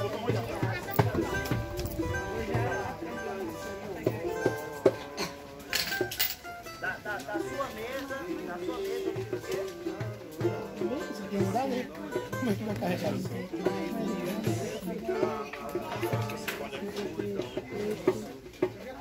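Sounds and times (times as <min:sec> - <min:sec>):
voices singing: 0:00.0 - 0:06.2, 0:06.8 - 0:18.7
plucked strings: 0:00.0 - 0:18.8.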